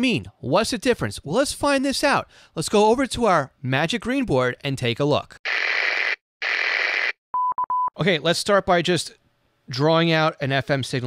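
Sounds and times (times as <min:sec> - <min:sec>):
short beeps: 0:07.4 - 0:08.0.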